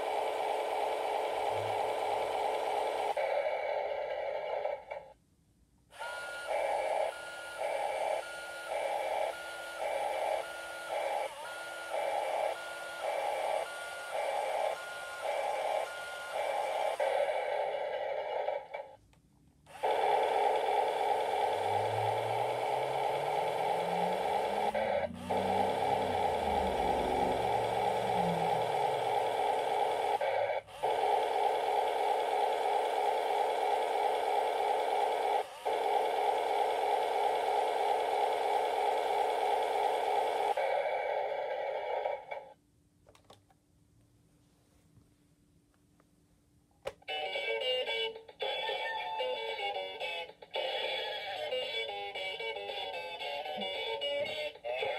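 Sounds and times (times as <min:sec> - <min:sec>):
toy electronic beeps: 0:06.0 - 0:17.0, 0:47.1 - 0:54.9
steady electronic buzzing: 0:19.8 - 0:33.8
low rising and falling tone: 0:21.4 - 0:30.0.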